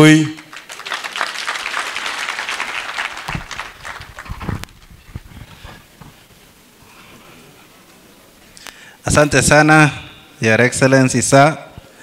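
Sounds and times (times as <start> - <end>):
audience clapping: 0.0 - 5.0
low bumps on microphone: 3.3 - 6.2.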